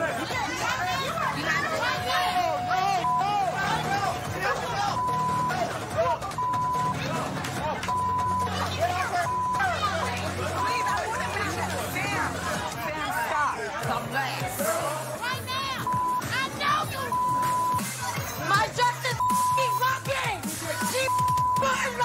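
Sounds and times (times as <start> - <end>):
music: 0.0 - 22.0
people shouting in argument: 0.0 - 22.0
censor bleeps: 4.9 - 5.6, 6.4 - 7.0, 7.9 - 8.6, 9.2 - 9.8, 15.8 - 16.4, 17.0 - 18.0, 19.1 - 19.8, 21.0 - 22.0.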